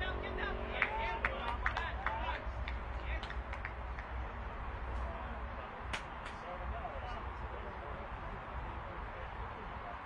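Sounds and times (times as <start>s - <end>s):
faint background voices: 0.0s - 10.0s
steady low hum: 0.0s - 10.0s.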